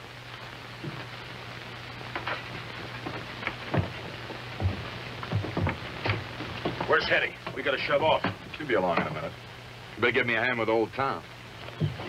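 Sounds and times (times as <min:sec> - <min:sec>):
film soundtrack hiss and hum: 0:00.0 - 0:12.0
short knocks and thumps: 0:02.5 - 0:09.2, 0:11.7 - 0:12.0.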